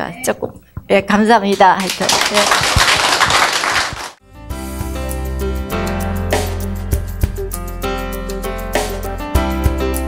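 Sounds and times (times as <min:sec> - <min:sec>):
audience applauding: 0:01.8 - 0:04.2
instrumental music: 0:04.2 - 0:10.0.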